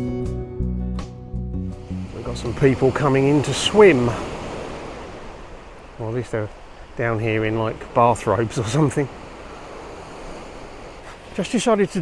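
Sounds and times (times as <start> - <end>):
waves on pebble beach: 1.8 - 12.0.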